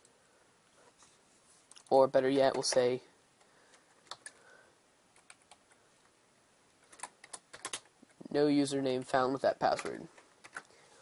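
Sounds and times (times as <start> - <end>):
computer keyboard typing: 3.8 - 4.4, 5.1 - 5.8, 6.8 - 8.0, 9.6 - 10.7.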